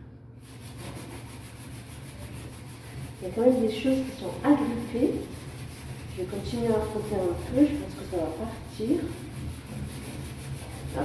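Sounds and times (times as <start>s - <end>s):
sponge scrubbing a steel sink: 0.4s - 11.0s.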